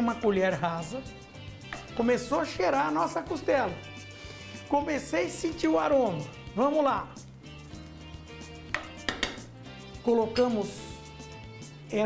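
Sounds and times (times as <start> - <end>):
spoon knocking against pan: 1.6 - 1.9, 8.7 - 9.5.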